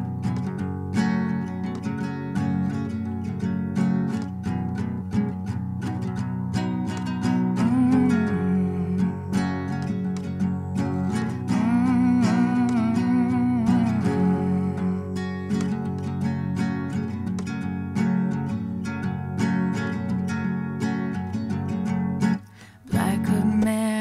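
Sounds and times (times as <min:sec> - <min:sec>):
classical guitar playing: 0:00.0 - 0:24.0
person humming melody: 0:07.4 - 0:15.7.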